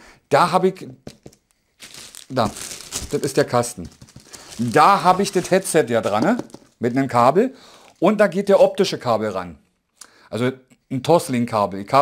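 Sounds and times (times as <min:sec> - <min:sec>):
shrink-wrap crinkling: 0:01.2 - 0:07.2.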